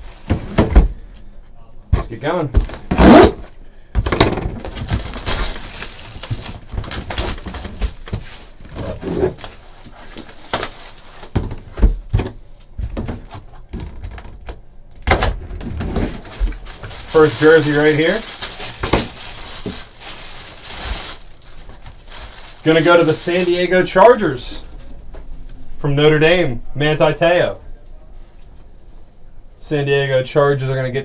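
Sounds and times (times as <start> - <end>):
shrink wrap crinkling and tearing: 4.6 - 11.4, 16.0 - 24.8.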